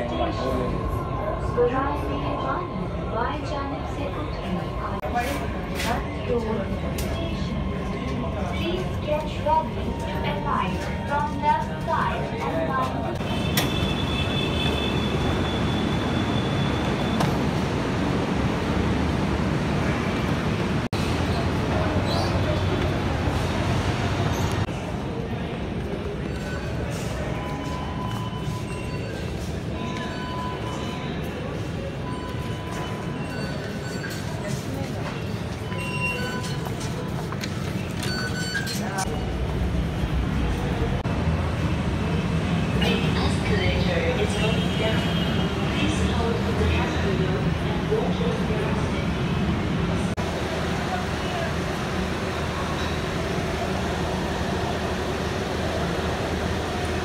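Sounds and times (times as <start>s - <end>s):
background chatter: 0.0s - 13.5s, 21.2s - 41.1s, 42.0s - 57.0s
metro train rumble: 0.0s - 38.2s, 38.8s - 57.0s.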